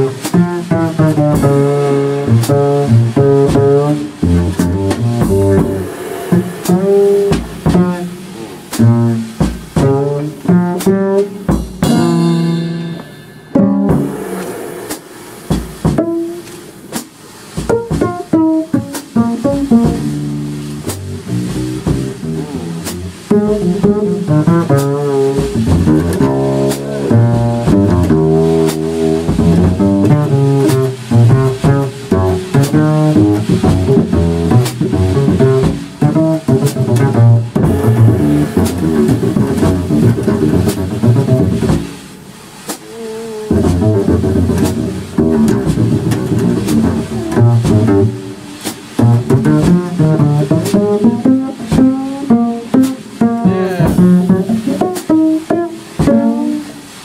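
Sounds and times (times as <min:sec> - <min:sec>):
pizzicato double bass jazz: 0:00.0 - 0:57.0.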